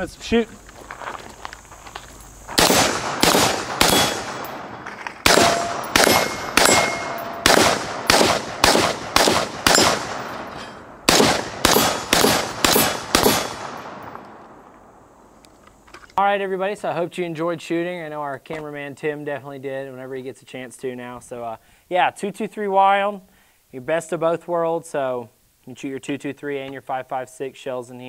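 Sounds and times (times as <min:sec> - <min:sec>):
rifle gunshots with echo: 0:02.5 - 0:14.6.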